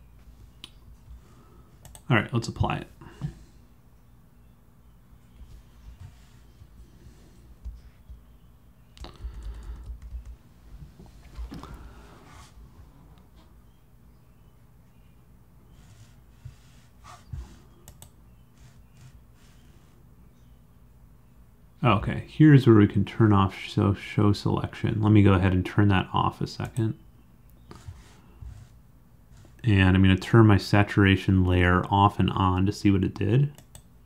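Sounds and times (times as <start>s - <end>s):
keyboard and mouse clicks: 1.8s - 2.1s, 9.0s - 10.4s, 17.8s - 18.2s, 33.6s - 33.9s.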